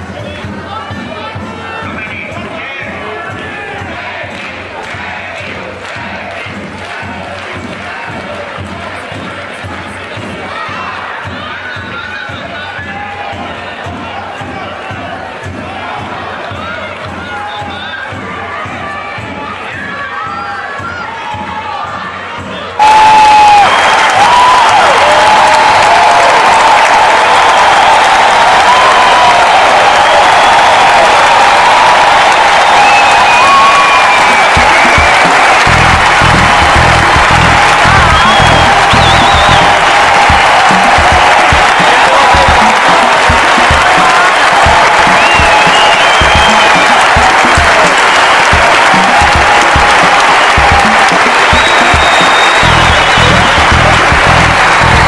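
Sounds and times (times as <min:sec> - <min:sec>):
crowd applauding and cheering: 0:00.0 - 0:55.0
music: 0:00.0 - 0:55.0
low bass beat: 0:35.4 - 0:44.0, 0:50.6 - 0:55.0.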